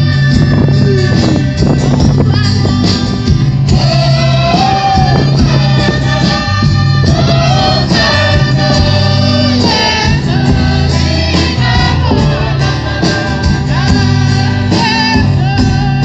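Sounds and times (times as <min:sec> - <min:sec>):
choir singing a hymn: 0:00.0 - 0:16.0
guitar: 0:00.0 - 0:16.0.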